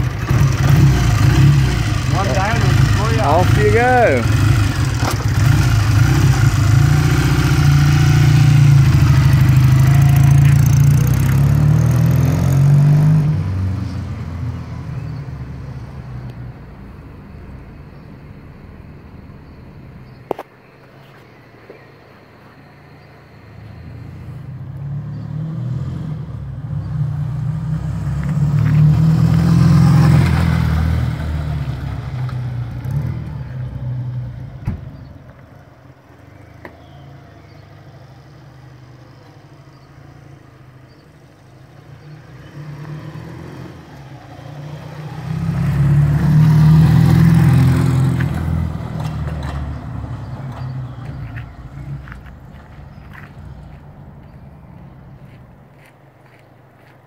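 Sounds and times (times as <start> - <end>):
motorcycle passing by: 0.0 - 16.2, 23.5 - 35.2, 36.5 - 55.4.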